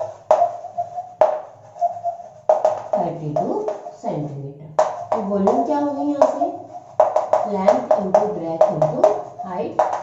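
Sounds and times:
chalk tapping on blackboard: 0.0s - 4.0s, 4.8s - 10.0s
woman speaking softly: 3.0s - 6.6s, 7.4s - 9.8s.

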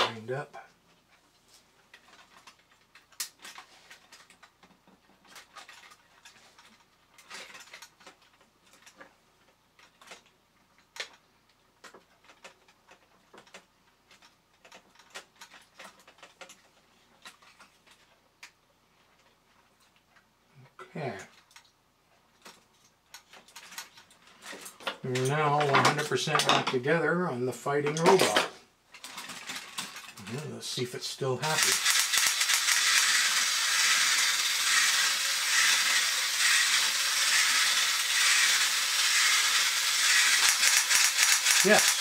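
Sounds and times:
hand tool clicking on metal: 31.4s - 42.0s.

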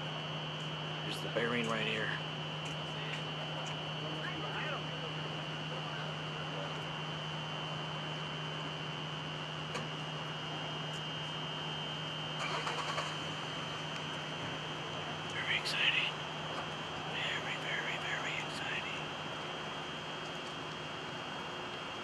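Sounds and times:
high-pitched whine: 0.0s - 22.0s
low hum: 0.0s - 22.0s.

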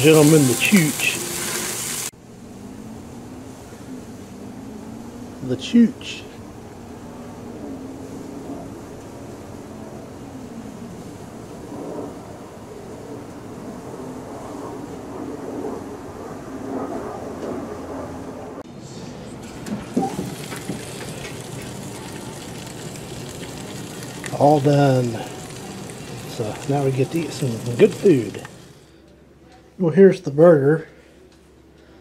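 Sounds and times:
burgers sizzling on a grill: 0.0s - 2.2s, 19.2s - 28.9s.

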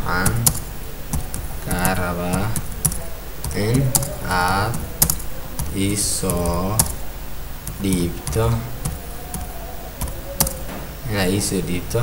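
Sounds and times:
voice drawing out syllables: 1.5s - 7.2s, 7.8s - 12.0s.

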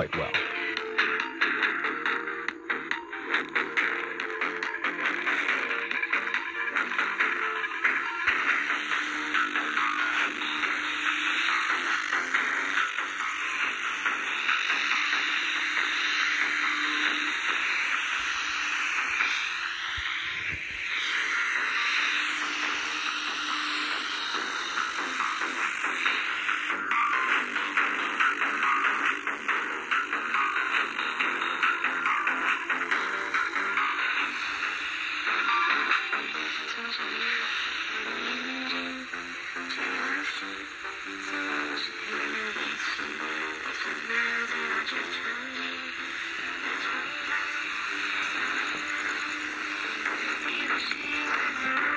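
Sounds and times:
radio hiss: 0.0s - 0.5s, 5.2s - 51.9s
thin music from small radio speaker: 0.0s - 51.9s.

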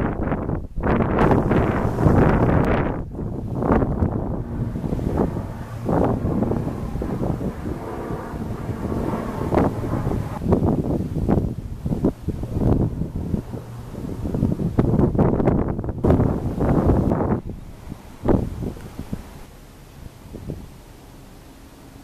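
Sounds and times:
wind buffeting microphone: 0.0s - 20.8s.

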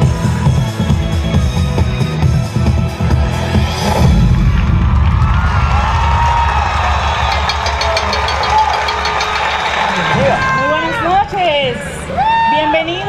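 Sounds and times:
low rumbling sound system: 0.0s - 12.3s
crowd cheering and shouting: 0.0s - 13.0s.

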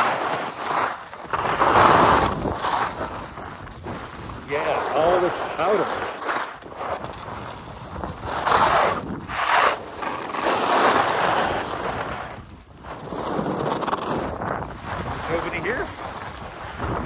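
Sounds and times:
skis scraping over snow: 0.0s - 17.0s
wind buffeting microphone: 1.3s - 5.8s, 6.7s - 9.5s, 11.5s - 17.0s.

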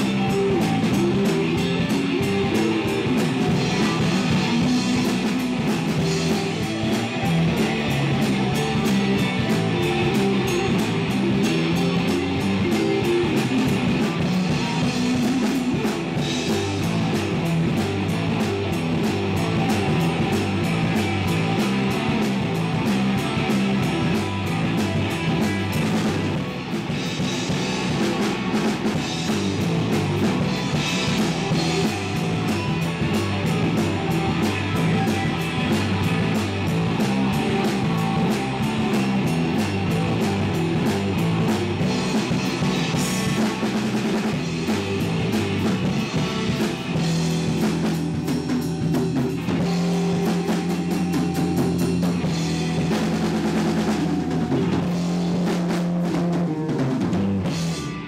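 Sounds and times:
rock band playing: 0.0s - 58.0s.

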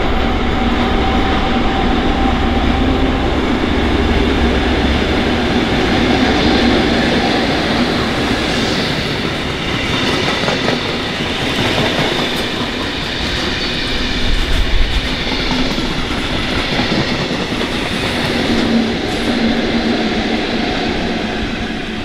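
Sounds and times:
diesel locomotive drone: 0.0s - 22.0s
train wheels clattering over rails: 3.8s - 21.1s.

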